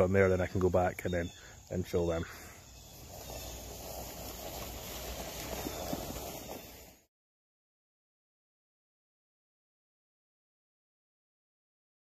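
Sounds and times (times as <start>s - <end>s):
spreader wheels and impeller rattling: 2.9s - 7.0s.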